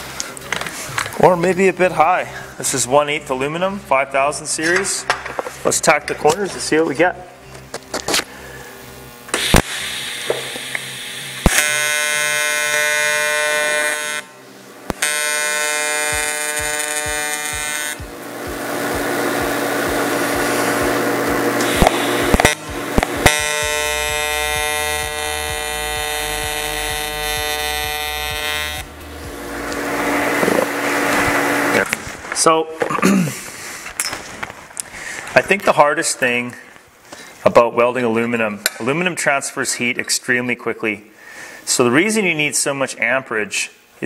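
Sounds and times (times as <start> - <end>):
welding arc buzzing: 5.0 - 32.2.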